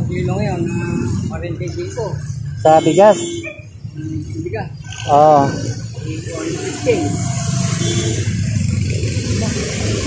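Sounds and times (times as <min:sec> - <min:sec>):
street noise: 0:00.0 - 0:10.0
vehicle engine rumbling: 0:00.0 - 0:10.0.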